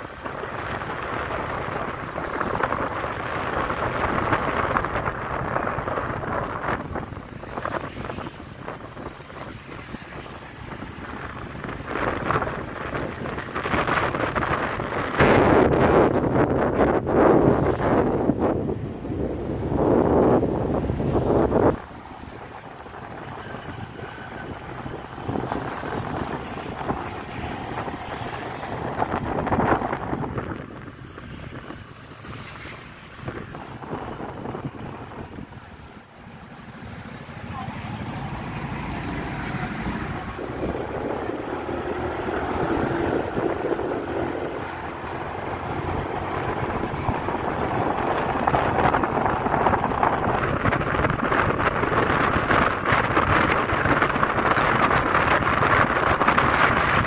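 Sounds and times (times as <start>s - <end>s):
street traffic: 0.0s - 57.0s
wind buffeting microphone: 0.0s - 57.0s.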